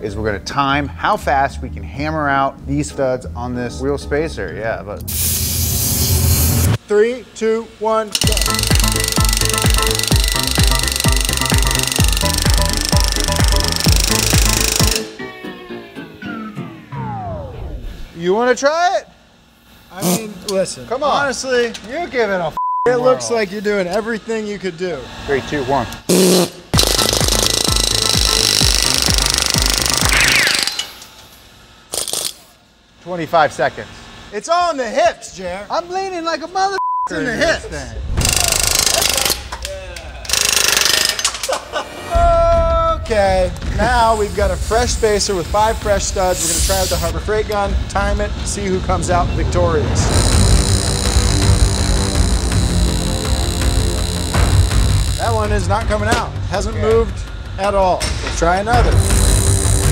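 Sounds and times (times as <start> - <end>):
compressed air hissing: 5.0 - 6.8, 43.9 - 47.2
pneumatic air hammer rattling: 8.1 - 15.1, 26.1 - 31.3, 31.9 - 32.6, 38.2 - 41.6, 50.2 - 55.4
music with steady beat: 8.2 - 17.1, 26.8 - 30.3, 50.2 - 59.9.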